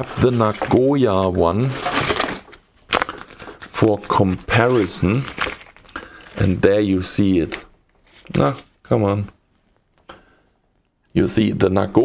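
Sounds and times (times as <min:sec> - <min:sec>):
handling rustle: 0:00.1 - 0:06.6.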